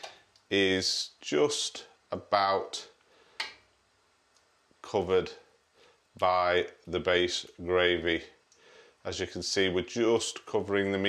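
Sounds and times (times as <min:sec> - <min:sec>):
man talking: 0:00.0 - 0:03.0, 0:04.8 - 0:05.5, 0:06.2 - 0:08.4, 0:09.1 - 0:11.0.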